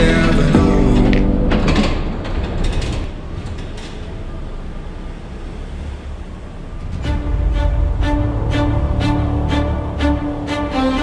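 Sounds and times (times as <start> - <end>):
song playing: 0.0 - 2.1, 6.8 - 11.0
car road and cabin noise: 0.0 - 10.5.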